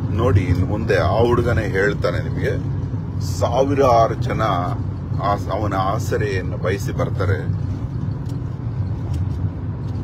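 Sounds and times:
vehicle rumble inside cabin: 0.0s - 10.0s.

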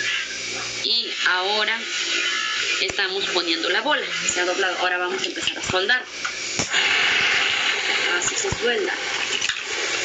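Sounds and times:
torch flame hissing: 0.0s - 10.0s
gas torch ignition click: 5.5s - 7.5s.

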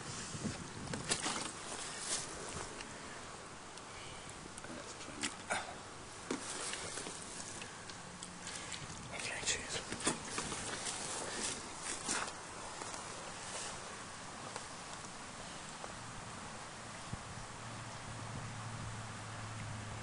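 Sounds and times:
rustling handling noise: 0.0s - 3.0s, 6.2s - 15.2s.

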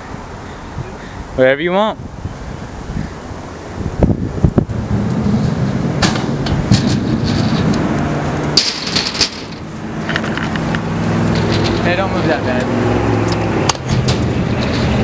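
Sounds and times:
scooter wheels rolling on concrete: 4.0s - 15.0s.

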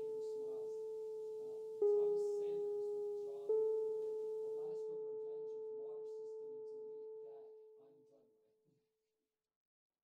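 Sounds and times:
pure-toned musical note ringing: 0.0s - 8.2s.

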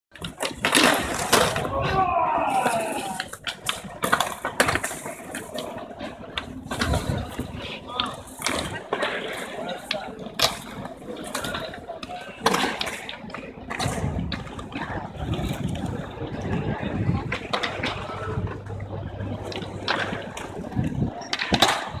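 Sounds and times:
skateboard wheels rolling on stone: 0.1s - 22.0s
skateboards clacking on ground: 0.1s - 22.0s
people's voices: 0.2s - 22.0s.

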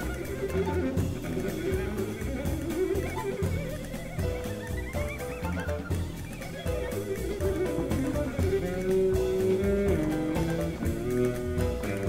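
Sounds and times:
drum strokes: 0.0s - 12.0s
jazz combo playing: 0.0s - 12.0s
walking bass notes: 0.0s - 12.0s.

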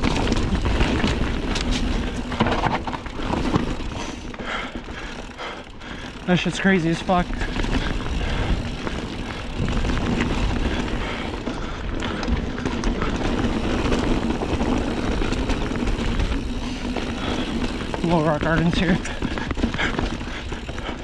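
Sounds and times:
bike rattling: 0.0s - 21.0s
bike tyres on dirt and stone: 0.0s - 21.0s.

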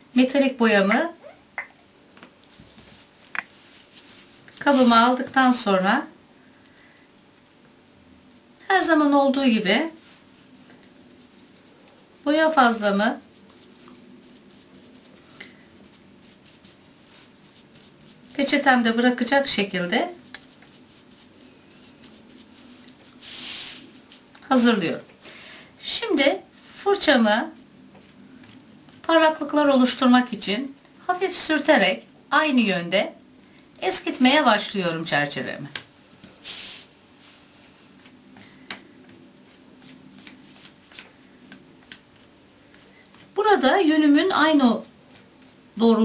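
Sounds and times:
soft hiss: 0.0s - 46.0s
paintbrush rubbing on paper napkin: 2.5s - 5.3s, 9.7s - 24.3s, 36.4s - 38.2s, 39.0s - 41.0s, 42.1s - 46.0s
brush scratching and ticking: 9.6s - 23.4s, 28.0s - 30.0s, 41.8s - 46.0s.

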